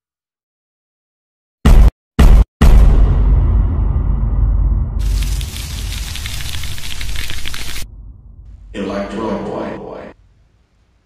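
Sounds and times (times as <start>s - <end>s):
low rumble: 3.2s - 10.6s
crackling hissing noise: 5.0s - 7.9s.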